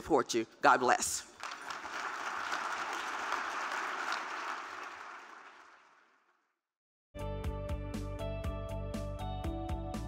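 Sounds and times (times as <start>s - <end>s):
audience applauding: 1.4s - 6.4s.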